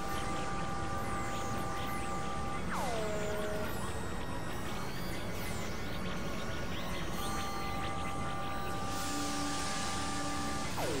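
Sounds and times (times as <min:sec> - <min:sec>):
synthesizer noise drone: 0:07.7 - 0:11.0.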